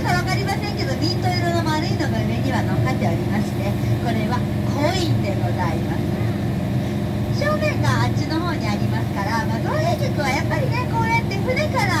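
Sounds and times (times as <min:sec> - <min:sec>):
boat engine low drone: 0:00.0 - 0:12.0.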